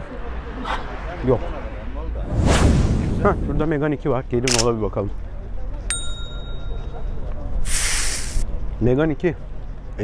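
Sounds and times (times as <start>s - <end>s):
outdoor market background noise: 0.0s - 10.0s
hissing whoosh effect: 2.2s - 3.8s.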